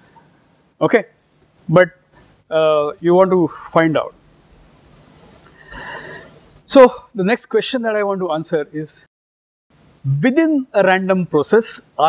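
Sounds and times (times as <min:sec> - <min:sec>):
man speaking: 0:00.8 - 0:01.0, 0:01.7 - 0:01.9, 0:02.5 - 0:04.1, 0:06.7 - 0:09.1, 0:10.1 - 0:12.0.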